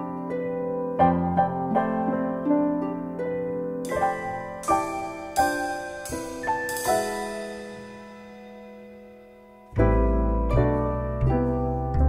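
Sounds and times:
keyboard chord ringing: 0:03.7 - 0:12.0.

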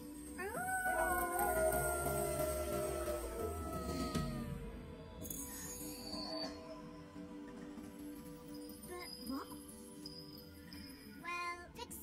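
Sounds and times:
film score music: 0:00.0 - 0:11.8
howl rising in pitch: 0:00.2 - 0:07.2.

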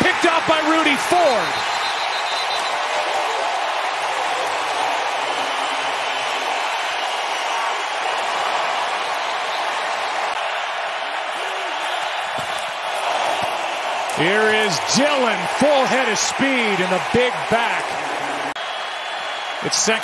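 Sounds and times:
stadium crowd din: 0:00.0 - 0:20.0.

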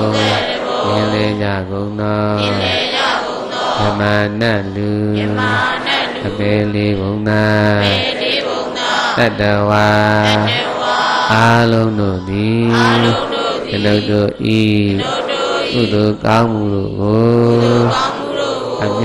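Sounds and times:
devotional chanting voices: 0:00.0 - 0:19.0.

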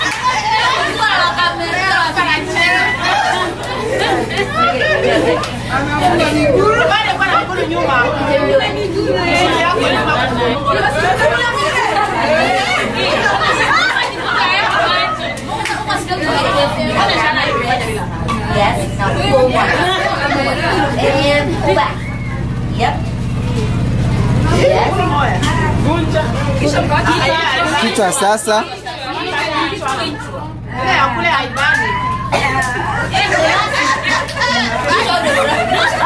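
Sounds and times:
group chatter: 0:00.0 - 0:36.0
steady low hum: 0:00.0 - 0:36.0.

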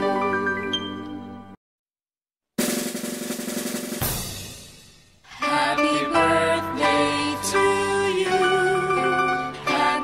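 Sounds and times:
snare drum roll: 0:02.6 - 0:05.2
cymbal crash: 0:02.6 - 0:05.3.

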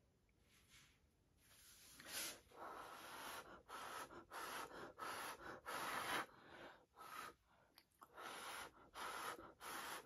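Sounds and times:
person blowing breathy puffs: 0:01.9 - 0:07.4, 0:08.1 - 0:10.0.

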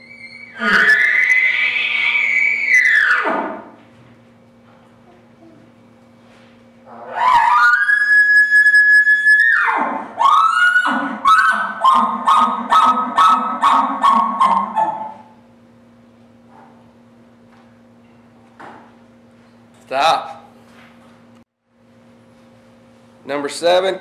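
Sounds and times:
elk bugle call whistle: 0:10.2 - 0:15.2.

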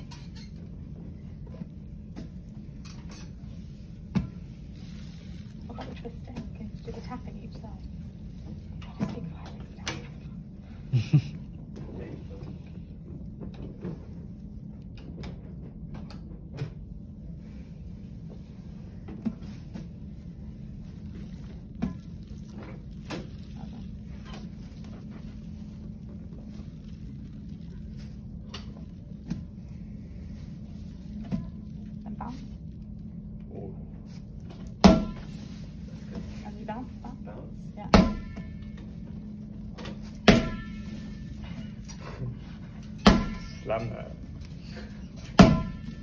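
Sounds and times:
room hum: 0:00.0 - 0:46.0
exercise ball knocks: 0:34.8 - 0:35.4, 0:37.9 - 0:38.6, 0:40.2 - 0:40.8, 0:43.0 - 0:43.6, 0:45.4 - 0:46.0.

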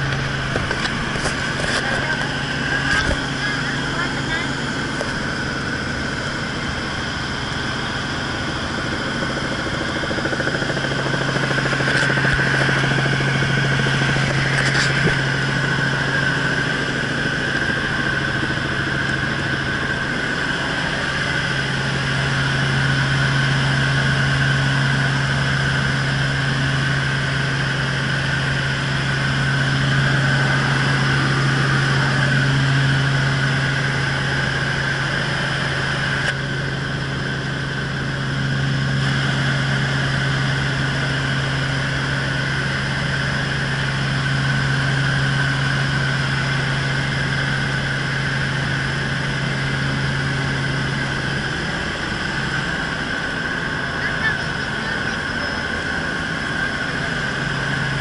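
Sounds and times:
helicopter engine and rotor drone: 0:00.0 - 0:58.0.

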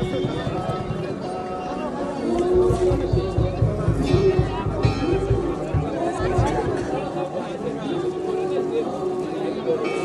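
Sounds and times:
people chattering: 0:00.0 - 0:10.0
music with fast low beat: 0:02.6 - 0:07.0.

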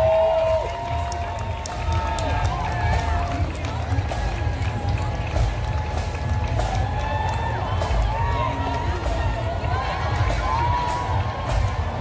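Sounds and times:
crowd chatter: 0:00.0 - 0:12.0
marching band playing: 0:00.9 - 0:12.0.

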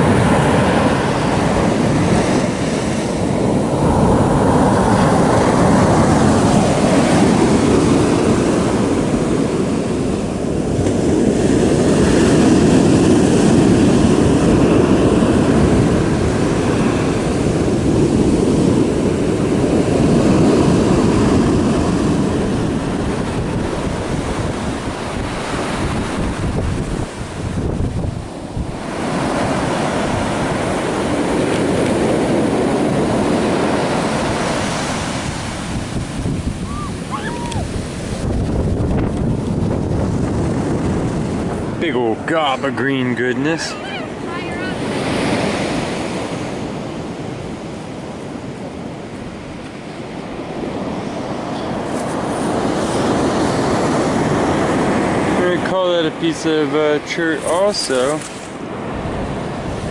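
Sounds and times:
ocean surf breaking on sand: 0:00.0 - 0:59.9
wind rumbling on microphone: 0:00.0 - 0:59.9.

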